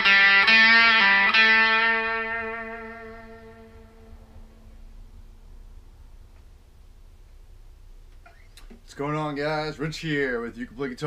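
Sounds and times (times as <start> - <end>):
electric guitar note ringing: 0.0 - 5.3
faint low amp hum: 0.0 - 11.0.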